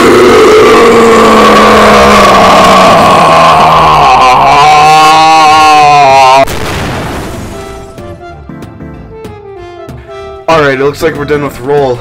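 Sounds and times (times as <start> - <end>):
distorted vocal groan: 0.0 - 6.5.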